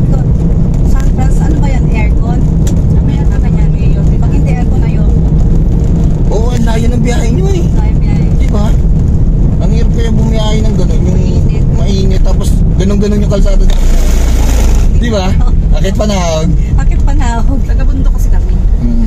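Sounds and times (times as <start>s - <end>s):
car engine rumble and road noise: 0.0s - 19.0s
people talking: 0.9s - 2.4s, 3.0s - 5.2s, 6.3s - 8.8s, 9.6s - 19.0s.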